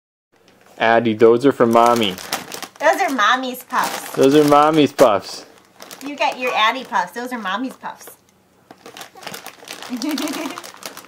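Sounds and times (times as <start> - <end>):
plastic snack bag crinkling: 0.4 - 11.0.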